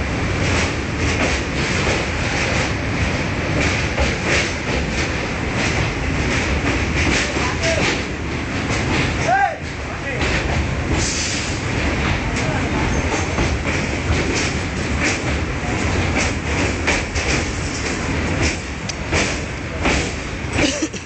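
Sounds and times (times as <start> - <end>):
train wheels clacking over rails: 0.0 - 21.0.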